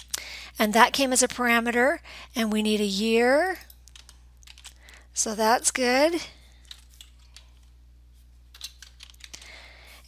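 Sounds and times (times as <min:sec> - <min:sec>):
steady low hum: 0:00.0 - 0:10.0
keyboard typing: 0:03.9 - 0:04.9, 0:08.5 - 0:09.5.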